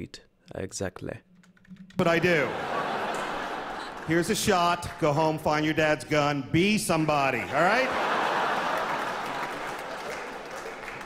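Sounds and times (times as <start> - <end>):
audience applauding: 2.0 - 5.8, 7.3 - 11.0
audience laughing: 2.0 - 5.8, 7.3 - 11.0.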